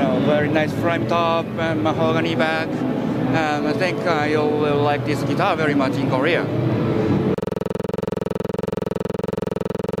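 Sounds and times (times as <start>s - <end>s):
fluttering synthesizer chord: 7.4s - 10.0s.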